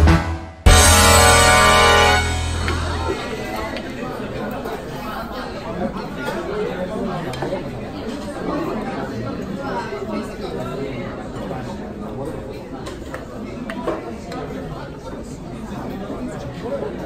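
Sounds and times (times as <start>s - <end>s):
many voices talking: 0.8s - 17.0s.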